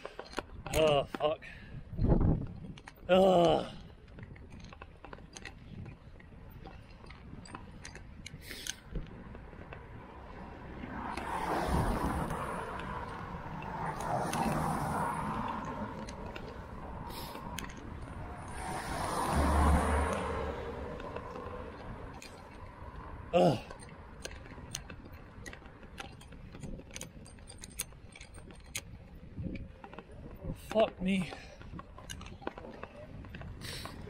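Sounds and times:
bicycle clicks and rattles: 0.0s - 34.0s
cars passing on damp road: 0.0s - 34.0s.

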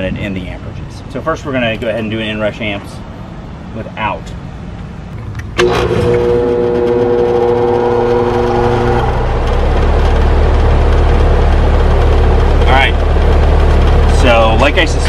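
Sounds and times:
compressor humming: 4.7s - 15.0s.

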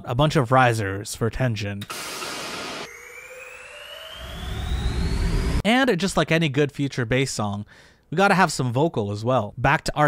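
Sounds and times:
synth riser noise sweep: 1.9s - 5.6s.

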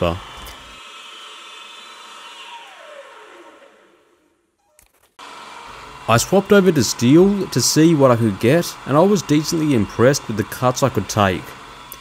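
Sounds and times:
milling machine whine: 0.0s - 4.3s, 5.2s - 12.0s
spindle winding down: 0.0s - 12.0s
steady machine sound: 5.2s - 12.0s.

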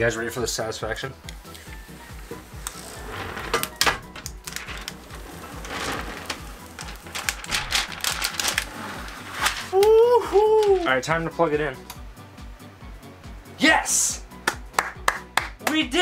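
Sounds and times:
background music with beat: 0.4s - 3.1s, 9.3s - 16.0s
plastic film peeling crackle: 3.6s - 11.1s.

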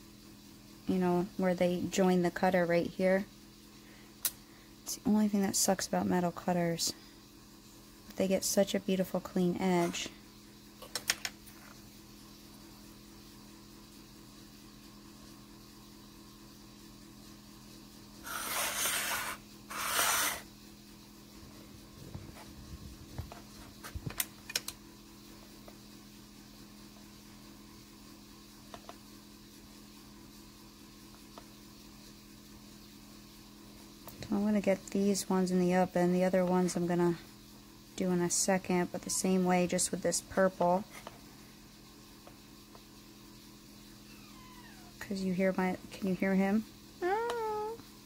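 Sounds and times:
steady low hum: 0.0s - 48.0s
knife rasping scrapes: 18.2s - 20.5s.

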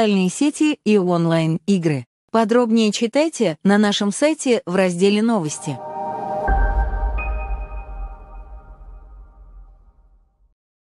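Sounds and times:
sustained electronic chord: 5.5s - 10.0s
deep low drone: 5.8s - 10.0s.

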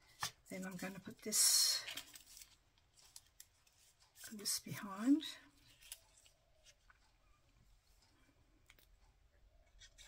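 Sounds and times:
paper rustling: 0.1s - 4.4s, 5.6s - 7.1s.

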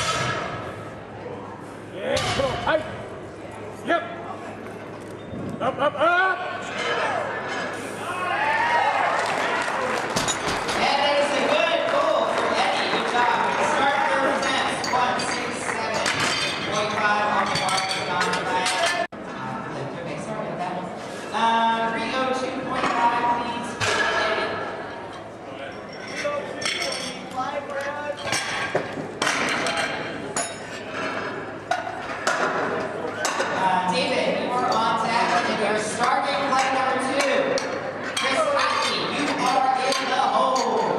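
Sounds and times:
indistinct voices in a hall: 0.0s - 40.9s.

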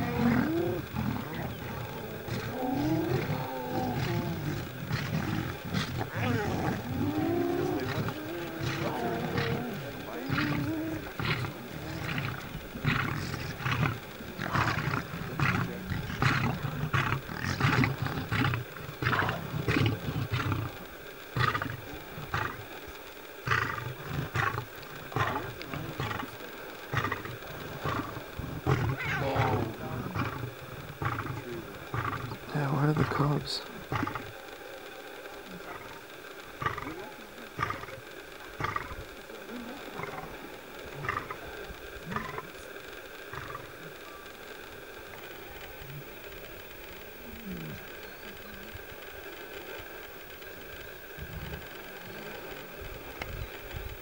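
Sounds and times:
lion growling: 0.0s - 54.0s.

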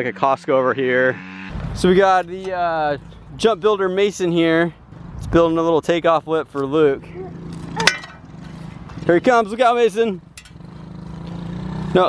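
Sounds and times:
dirt bike engine running: 0.0s - 5.8s, 7.0s - 12.0s.

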